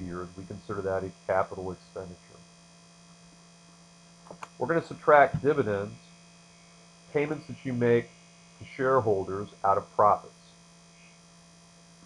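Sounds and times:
electrical mains hum: 0.0 - 12.0
person speaking: 4.3 - 6.0, 7.2 - 8.0.

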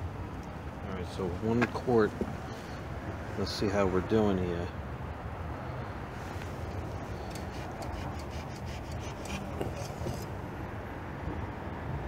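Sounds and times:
dipstick clicks and rattles: 6.7 - 10.3.

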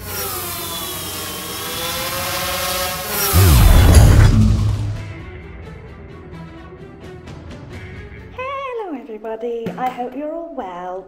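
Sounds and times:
drone propellers whirring: 0.0 - 5.8.

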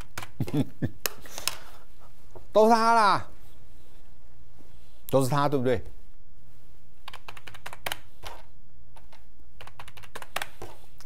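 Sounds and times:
low steady hum: 0.0 - 11.0
computer keyboard clicks: 7.0 - 10.6.

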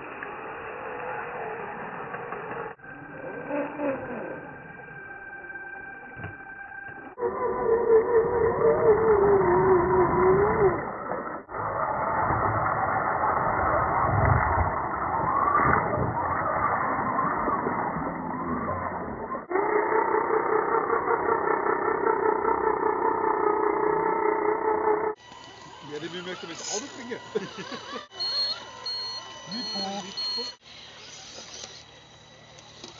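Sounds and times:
electric motors whining: 0.0 - 32.9.

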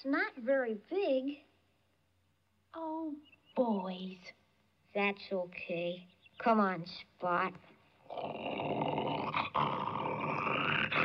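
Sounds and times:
dog growling: 8.0 - 11.0.

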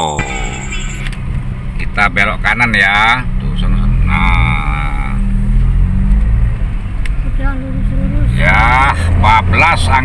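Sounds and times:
car engine rumble: 0.0 - 10.0
road noise inside car: 0.0 - 10.0.

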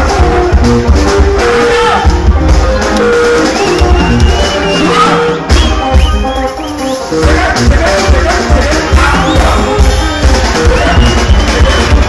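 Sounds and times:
drum kit: 0.0 - 12.0
high bending lead guitar line: 0.0 - 12.0
interlocking electric guitars: 0.0 - 12.0
pulsing bass guitar: 0.0 - 12.0.

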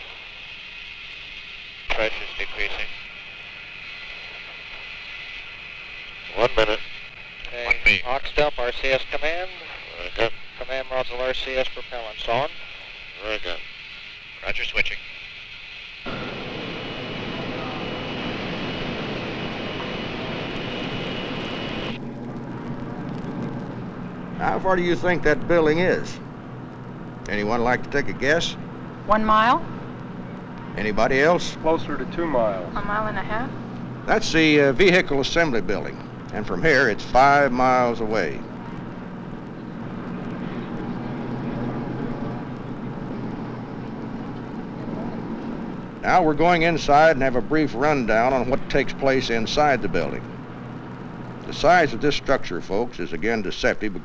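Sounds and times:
bus engine and road noise: 38.0 - 47.0.

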